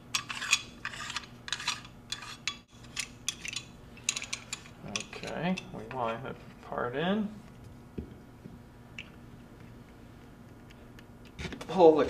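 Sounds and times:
metal parts clicking and scraping: 0.1s - 6.2s.

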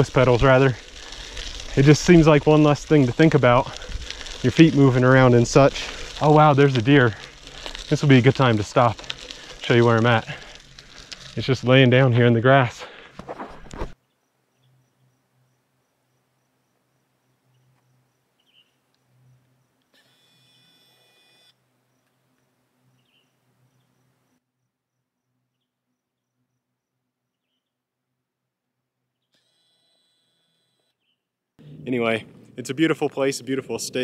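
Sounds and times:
insects chirping: 14.2s - 19.9s.

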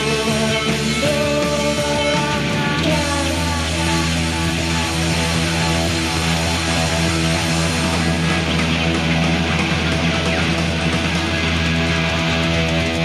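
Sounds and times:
bass guitar: 0.0s - 13.0s
electric guitar chords: 0.0s - 13.0s.

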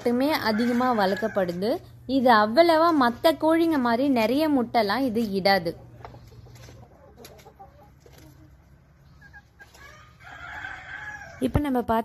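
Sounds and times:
chickens clucking: 0.0s - 12.0s.

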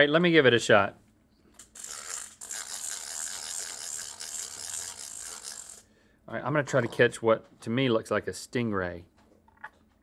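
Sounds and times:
toy fishing reel whirring: 1.6s - 5.9s.

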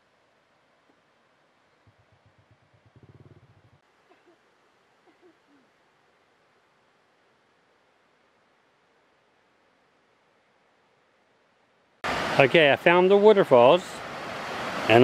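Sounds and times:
faint hiss: 0.0s - 15.0s.

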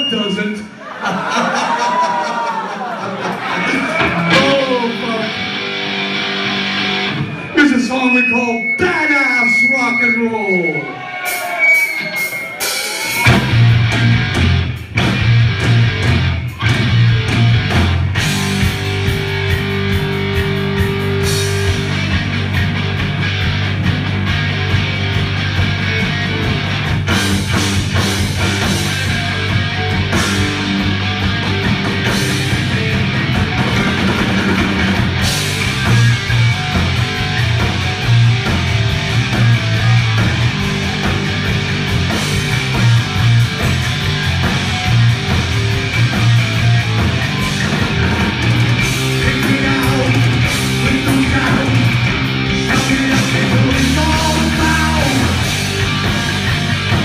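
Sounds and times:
drum kit: 3.2s - 7.8s, 11.0s - 57.0s
bass guitar: 3.3s - 10.3s, 11.0s - 57.0s
distorted electric guitar: 3.4s - 57.0s.

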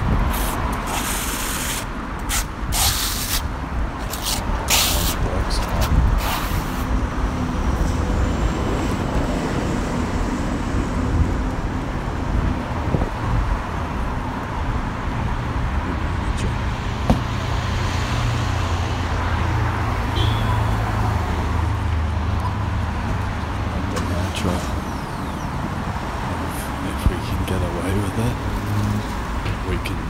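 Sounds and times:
cars passing: 0.0s - 30.0s
low engine drone: 23.2s - 28.0s.

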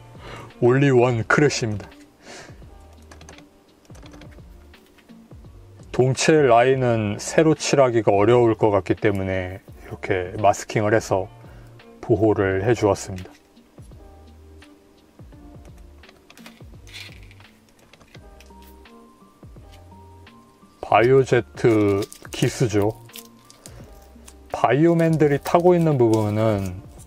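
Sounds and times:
soft background music: 0.0s - 27.0s
plastic parts clicking: 16.0s - 18.7s.

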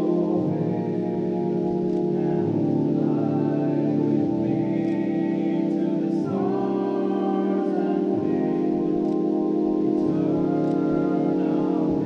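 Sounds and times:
live band with keyboard chords: 0.0s - 12.0s.

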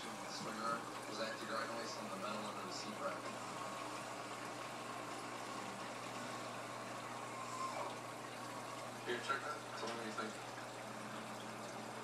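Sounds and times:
aquarium water bubbling: 0.0s - 12.0s.

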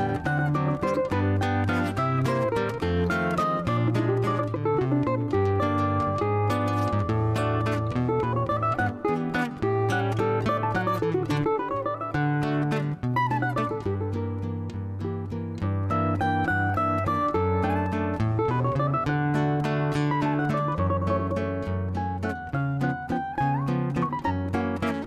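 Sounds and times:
acoustic guitar bass line and chords: 0.0s - 25.0s
cavaquinho fast picked melody: 0.0s - 25.0s.

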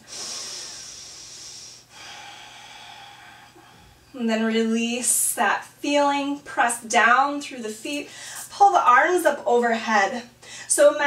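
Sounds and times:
woman breathing: 0.0s - 4.2s, 8.1s - 8.5s, 10.4s - 10.7s.

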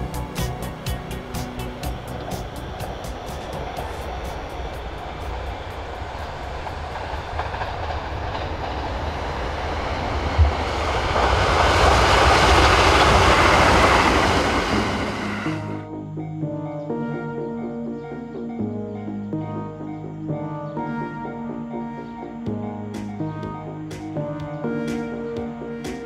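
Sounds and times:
electric train passing: 0.0s - 26.0s.

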